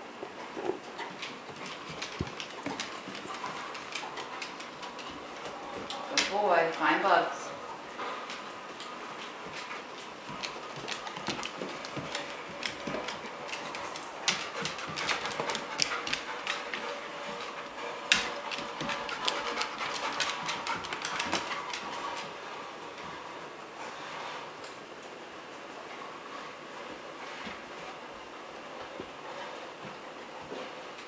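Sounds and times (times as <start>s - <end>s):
dog claws clicking on hardwood floor: 0.6s - 6.4s, 8.3s - 22.4s.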